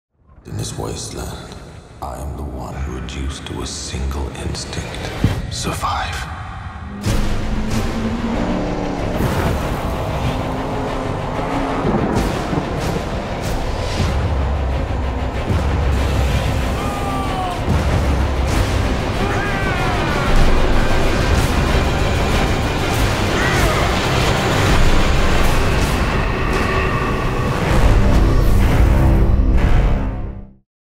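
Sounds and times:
heavy low rumble: 0.5 - 29.1
crashes and explosions: 4.8 - 30.0
sharp hits: 6.4 - 28.2
loud music: 6.6 - 30.4
vehicle engine noise: 6.8 - 16.7.

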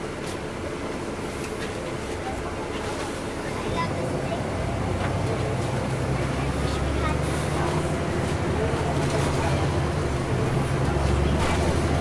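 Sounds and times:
diesel bus engine droning: 0.0 - 12.0
road and traffic noise: 0.0 - 12.0.

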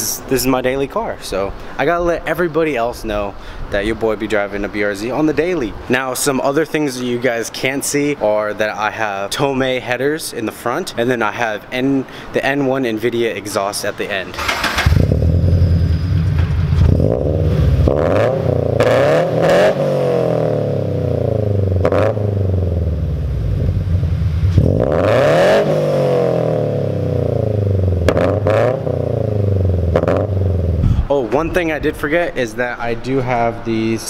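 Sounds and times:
car engine revving: 14.4 - 31.0.

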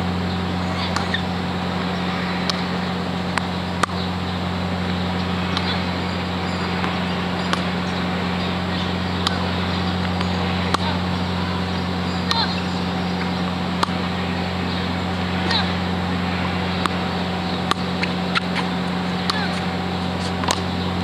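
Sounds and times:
steady low hum: 0.0 - 21.0
tennis balls struck by rackets: 0.8 - 20.9.

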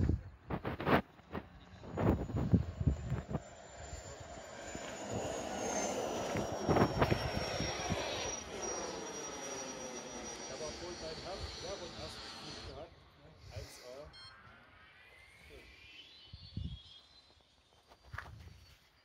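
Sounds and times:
model aircraft motor whining: 1.0 - 19.0.

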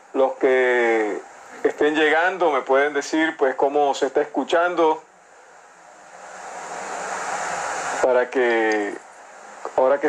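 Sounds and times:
hiss of noise: 3.1 - 10.0.

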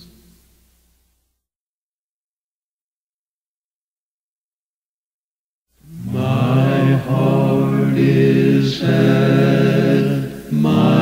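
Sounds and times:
a cappella gospel quartet singing: 5.8 - 11.0.

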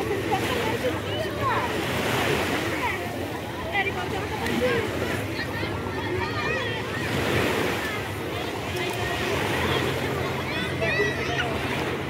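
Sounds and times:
sea water lapping: 0.0 - 12.0
voices of bathers: 0.0 - 12.0.

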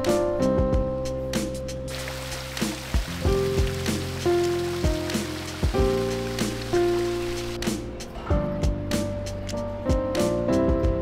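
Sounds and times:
fountain water splashing: 1.9 - 7.8
background music with bass beat: 2.6 - 11.0.

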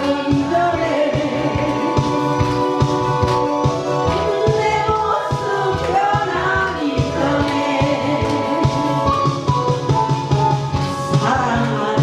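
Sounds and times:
woman singing into microphone: 0.0 - 9.6, 11.1 - 12.0
karaoke backing track: 0.0 - 12.0.

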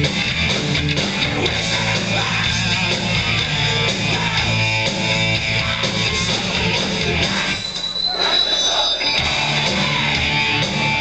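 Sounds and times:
heavy metal band playing: 0.0 - 11.0
crowd shouting: 5.5 - 11.0
high steady squeal: 7.1 - 9.6.

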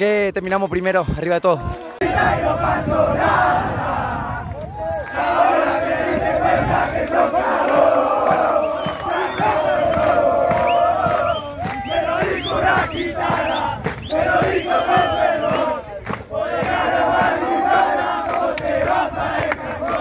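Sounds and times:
group chanting and shouting: 0.6 - 20.0.

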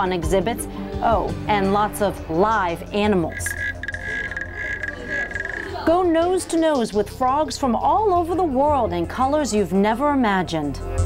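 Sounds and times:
frog trilling: 3.2 - 5.9.

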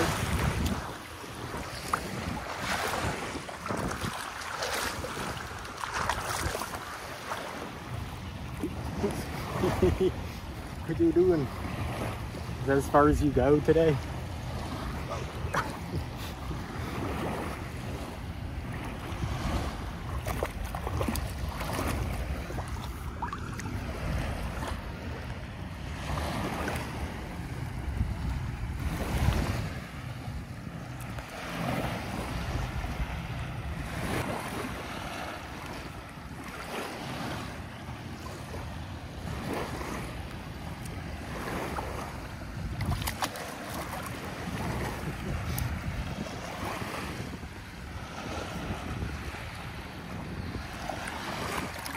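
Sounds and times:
wind noise on microphone: 0.0 - 6.9, 14.5 - 25.2, 25.9 - 30.5, 41.2 - 51.9
ocean surf washing onto beach: 0.0 - 51.9.

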